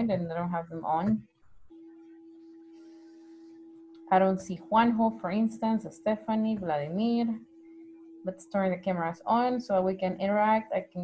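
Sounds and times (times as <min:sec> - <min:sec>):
faint steady humming tone: 0:00.0 - 0:11.0.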